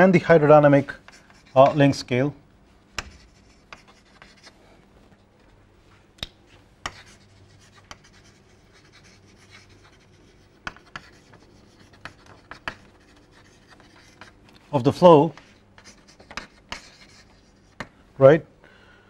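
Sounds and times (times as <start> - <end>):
faint steady hum: 0.0 - 19.0
chalk scratching on chalkboard: 0.8 - 1.9, 3.0 - 4.6, 6.8 - 14.4, 15.2 - 17.9
chalk tapping on board: 3.0 - 4.5, 6.8 - 14.4, 15.3 - 18.0.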